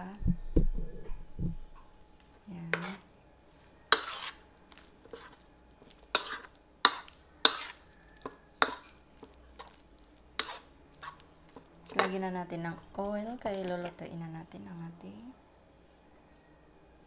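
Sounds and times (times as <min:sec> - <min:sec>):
spoon stirring thick mix: 0:02.2 - 0:14.0
spoon knocking and scraping bowl: 0:02.8 - 0:03.0, 0:03.9 - 0:04.4, 0:05.0 - 0:09.8, 0:10.4 - 0:12.2.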